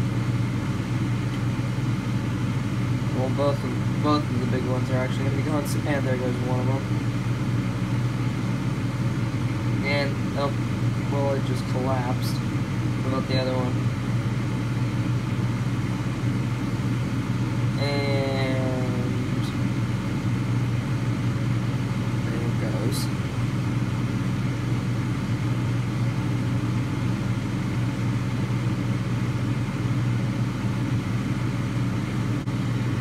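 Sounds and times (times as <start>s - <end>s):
fan running: 0.0s - 33.0s.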